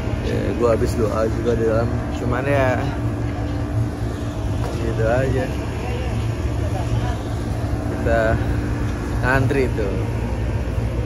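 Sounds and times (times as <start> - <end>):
air conditioning units rumbling: 0.0 - 11.0.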